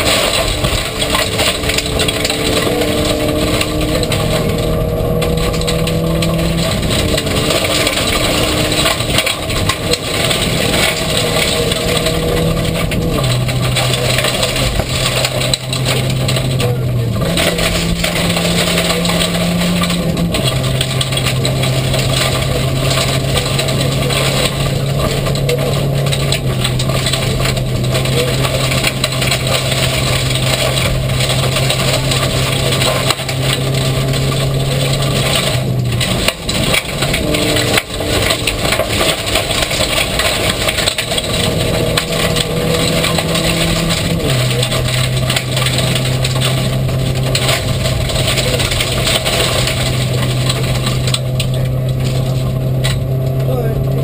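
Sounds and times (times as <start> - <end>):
car engine revving hard: 0.0 - 54.0
gravel and road noise: 0.0 - 54.0.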